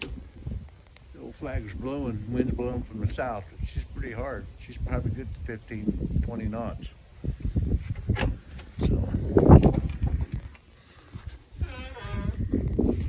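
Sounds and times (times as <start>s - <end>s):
wind buffeting microphone: 0.0s - 13.0s.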